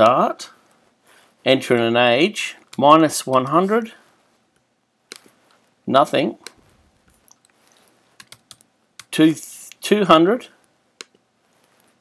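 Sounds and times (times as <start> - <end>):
computer keys typing: 8.2 - 9.1.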